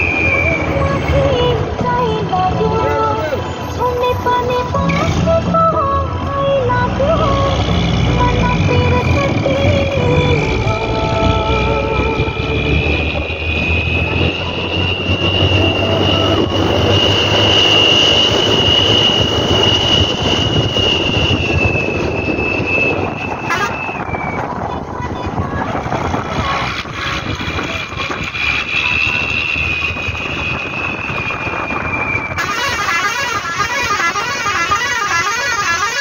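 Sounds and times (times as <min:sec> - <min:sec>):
bus engine and road noise: 0:00.0 - 0:36.0
high whine: 0:04.5 - 0:36.0.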